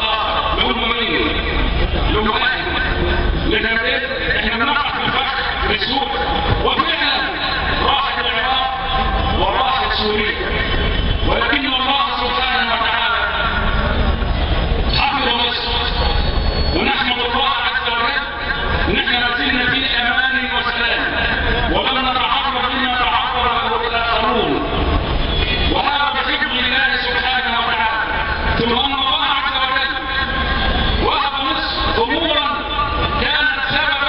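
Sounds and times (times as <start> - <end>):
hall noise hum: 0.0 - 34.0
man speaking over public address: 0.0 - 34.0.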